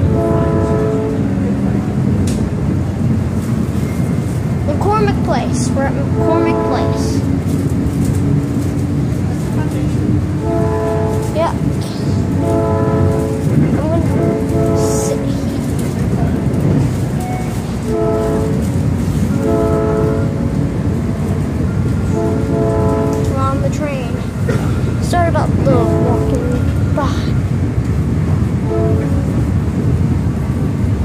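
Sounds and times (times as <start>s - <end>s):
train horn blasts: 0.0s - 1.6s, 6.1s - 7.3s, 10.4s - 15.8s, 17.2s - 20.6s, 22.0s - 23.6s, 25.6s - 26.7s, 28.6s - 29.3s
train rumbling: 0.0s - 31.0s.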